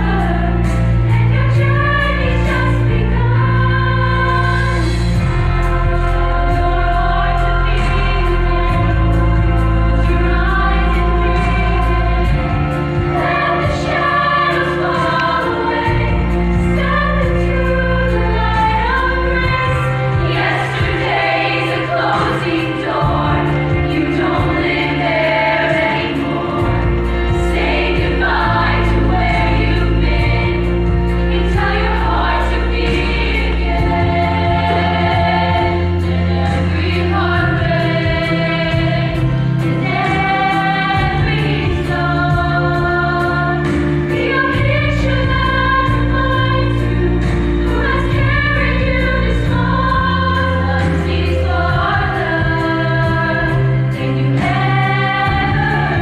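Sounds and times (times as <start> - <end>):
backing accompaniment with bass: 0.0 - 56.0
girls' choir singing: 0.0 - 56.0.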